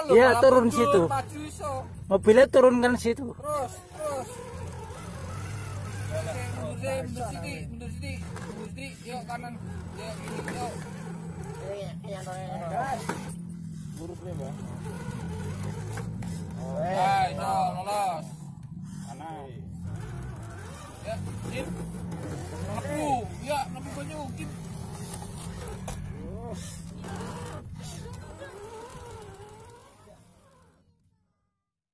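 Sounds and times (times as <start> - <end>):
people talking: 0.0 - 4.5, 5.7 - 13.3, 16.6 - 18.3, 20.9 - 24.7
toy car motor whining: 0.0 - 31.4.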